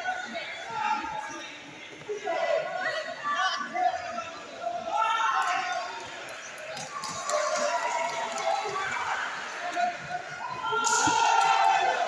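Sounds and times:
indistinct voices in large hall: 0:00.0 - 0:12.0.

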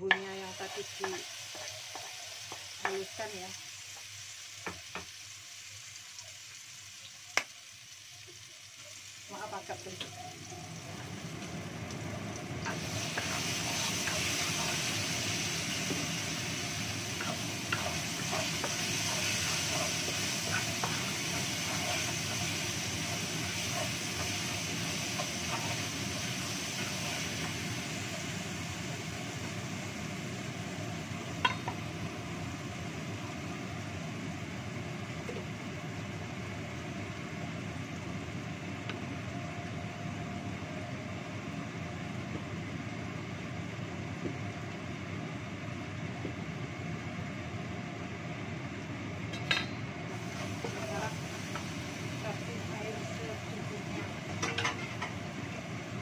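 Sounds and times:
paste sizzling in hot oil: 0:00.1 - 0:33.3, 0:50.1 - 0:56.0
wooden spatula scraping wok: 0:00.6 - 0:03.1, 0:12.6 - 0:27.7.

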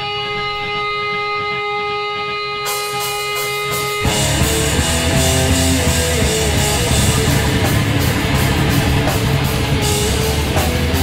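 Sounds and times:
drumming: 0:00.0 - 0:11.0
electric guitars ringing: 0:00.0 - 0:11.0.

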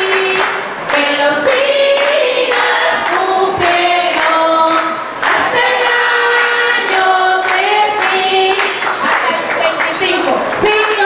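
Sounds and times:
voices singing along: 0:00.0 - 0:09.6.

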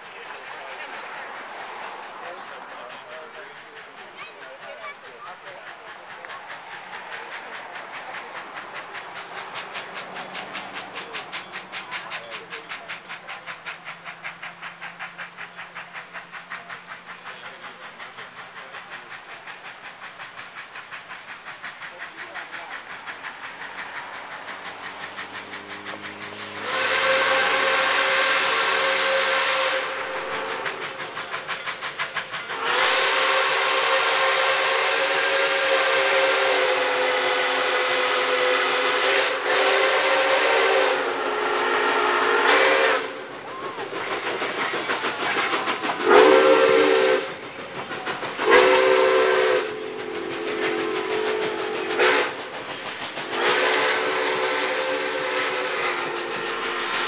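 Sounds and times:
steam locomotive exhaust chuffs: 0:00.0 - 0:57.0
steam whistle chord: 0:48.5 - 0:49.8.

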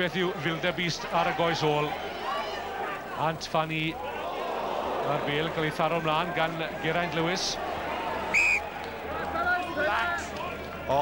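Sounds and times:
stadium crowd noise: 0:00.0 - 0:11.0
referee's whistle blast: 0:08.3 - 0:08.7.

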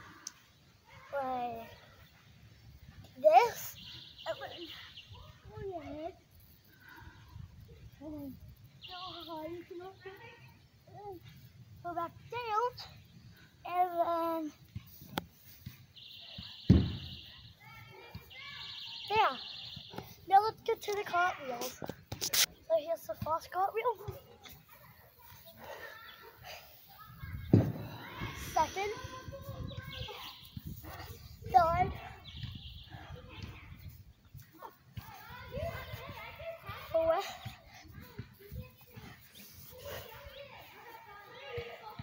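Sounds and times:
faint child's voice: 0:34.6 - 0:42.0.

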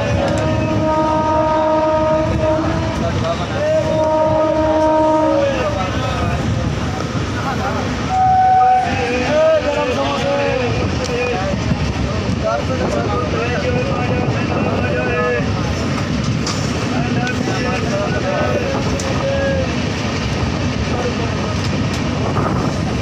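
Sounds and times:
train wheels rumbling on track: 0:00.0 - 0:23.0
wind on microphone: 0:00.0 - 0:23.0.

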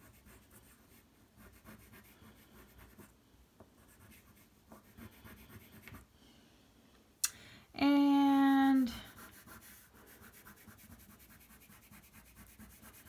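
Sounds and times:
crayon scratching on paper: 0:00.0 - 0:03.1, 0:03.8 - 0:06.1, 0:08.9 - 0:13.0.

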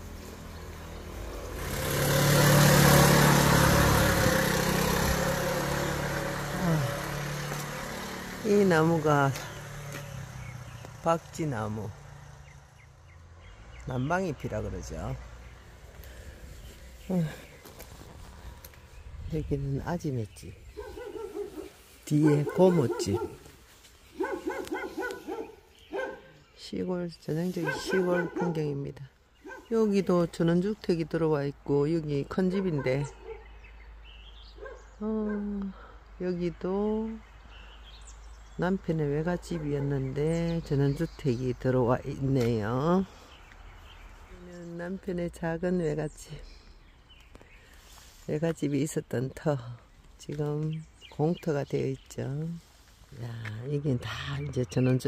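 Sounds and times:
motor vehicle passing by: 0:00.0 - 0:19.6, 0:20.6 - 0:26.5, 0:27.4 - 0:28.7
dog barking: 0:20.8 - 0:23.5, 0:24.1 - 0:26.4, 0:27.6 - 0:28.8, 0:29.4 - 0:29.7, 0:32.5 - 0:33.6, 0:34.6 - 0:35.5, 0:39.5 - 0:40.0.

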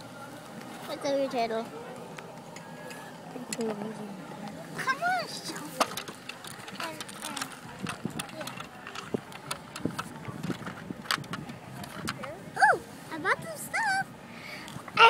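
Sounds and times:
child calling out: 0:12.6 - 0:12.8.

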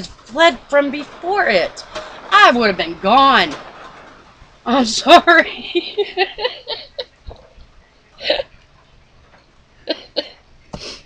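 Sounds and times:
woman laughing: 0:05.5 - 0:07.2, 0:08.2 - 0:08.5, 0:09.9 - 0:10.4.

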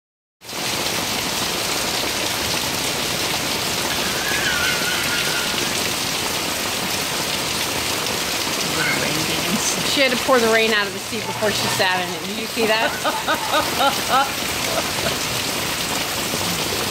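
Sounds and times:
heavy rain pouring: 0:00.4 - 0:16.9.

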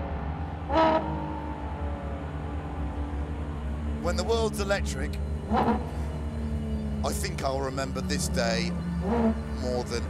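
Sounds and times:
car engine low rumble: 0:00.0 - 0:10.0.

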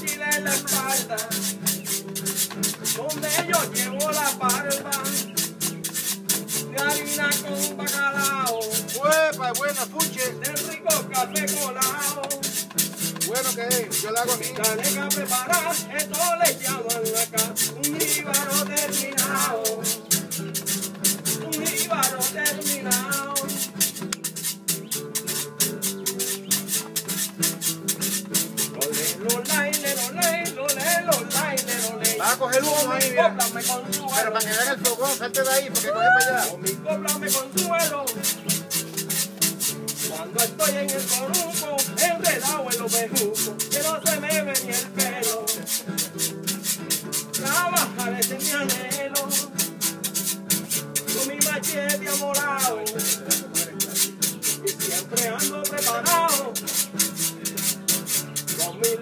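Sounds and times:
acoustic guitars strumming: 0:00.0 - 0:59.0
hand percussion shaken or scraped: 0:00.0 - 0:59.0.

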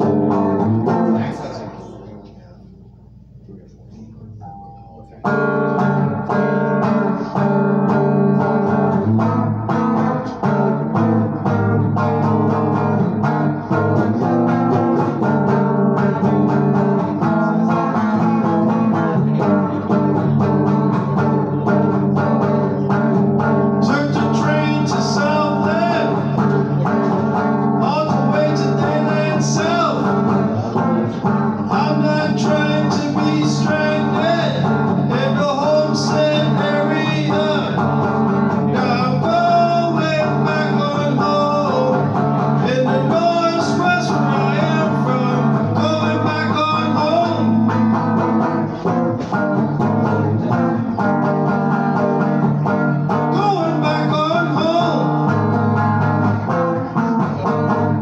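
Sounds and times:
solo guitar chords: 0:00.0 - 0:02.2, 0:04.4 - 0:58.0
man singing: 0:13.7 - 0:23.0, 0:23.6 - 0:49.0, 0:52.2 - 0:55.6.

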